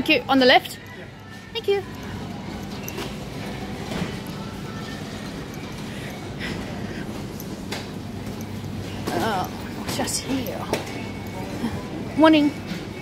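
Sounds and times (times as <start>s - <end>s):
shopping trolley rolling: 0.1s - 13.0s.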